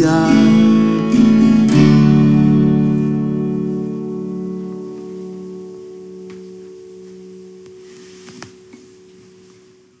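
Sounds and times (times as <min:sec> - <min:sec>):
acoustic guitar chord ringing: 0:00.0 - 0:10.0.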